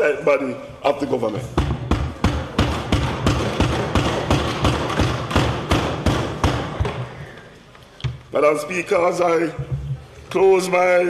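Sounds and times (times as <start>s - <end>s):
people thumping desks: 1.5s - 7.4s.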